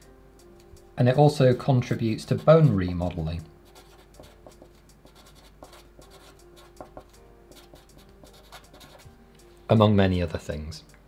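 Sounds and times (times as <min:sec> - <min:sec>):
marker writing on paper: 0:03.6 - 0:09.1.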